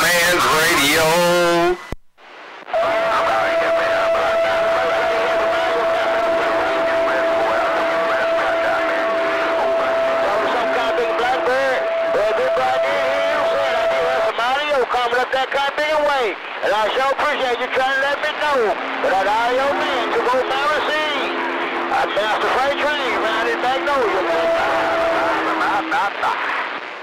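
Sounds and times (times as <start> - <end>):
man's voice over radio: 0.0 - 1.8, 2.7 - 26.8
garbled overlapping voices: 0.0 - 2.0, 2.6 - 27.0
radio whistle: 2.7 - 14.8.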